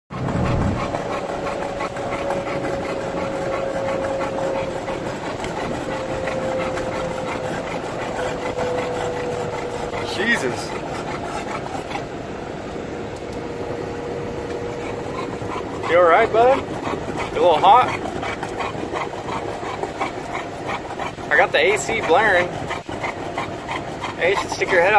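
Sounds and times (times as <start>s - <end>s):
dog panting: 0.1s - 12.1s, 14.1s - 24.9s
faint hum sinking in pitch: 0.1s - 21.3s
vehicle running noise: 0.1s - 24.9s
car air conditioning blaring: 0.2s - 20.3s.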